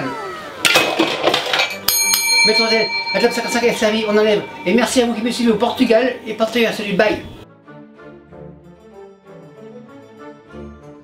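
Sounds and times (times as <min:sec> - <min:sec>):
clinking crashing noise: 0:00.7 - 0:05.9
service bell ringing: 0:01.6 - 0:06.6.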